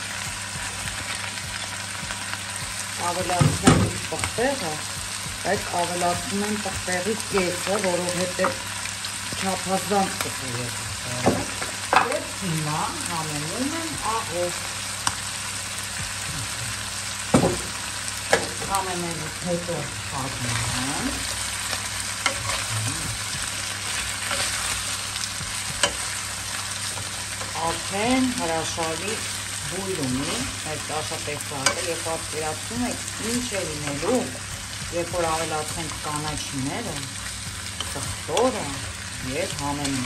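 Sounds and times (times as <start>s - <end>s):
food sizzling in a pan: 0.0s - 40.0s
food being stirred in a pan: 20.4s - 32.4s.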